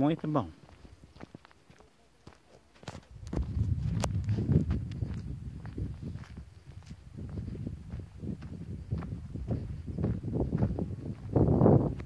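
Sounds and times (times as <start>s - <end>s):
footsteps on dirt: 0.0s - 12.0s
uneven rumble on microphone: 3.1s - 12.0s.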